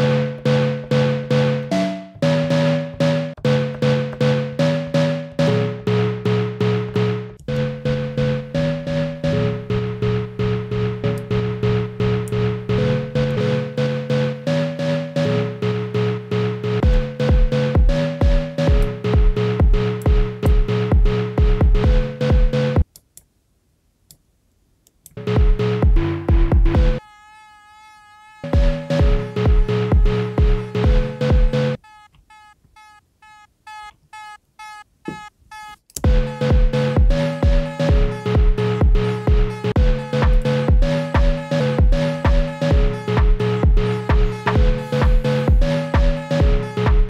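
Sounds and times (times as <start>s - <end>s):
chopped keyboard chord stabs: 0.0s - 22.9s, 25.2s - 27.0s, 28.4s - 31.8s, 36.0s - 47.0s.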